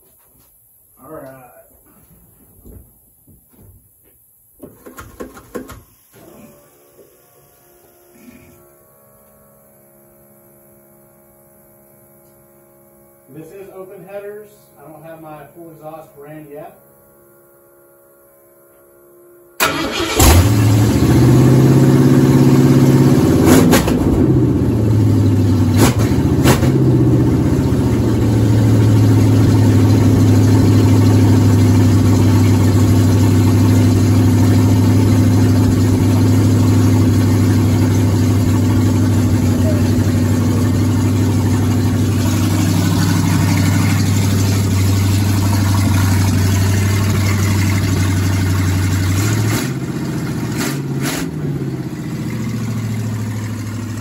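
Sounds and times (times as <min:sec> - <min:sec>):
car engine starting and idling: 0:19.6 - 0:54.0
sharp exhaust cracks: 0:19.6 - 0:54.0.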